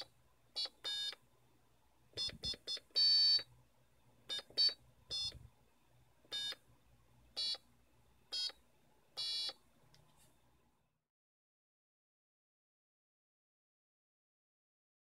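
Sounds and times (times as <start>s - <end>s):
buzzer electronic beeps: 2.2s - 3.5s, 4.3s - 5.4s, 6.4s - 6.6s, 7.4s - 7.6s, 8.3s - 8.6s, 9.2s - 9.6s.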